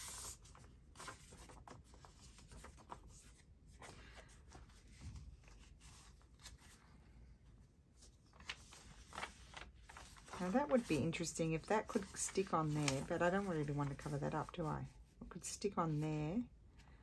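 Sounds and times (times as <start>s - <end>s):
paper rustling: 0.0s - 7.2s, 7.9s - 14.8s.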